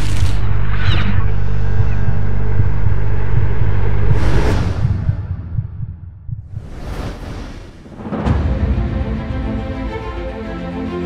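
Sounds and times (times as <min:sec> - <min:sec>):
low rumbling drone: 0:00.0 - 0:06.7
pulsing bass: 0:00.0 - 0:06.7.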